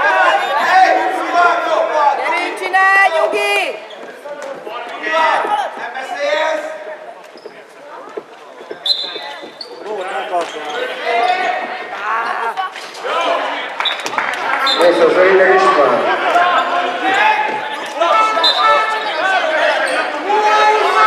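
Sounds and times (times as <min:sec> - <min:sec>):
players shouting: 0:09.9 - 0:21.0.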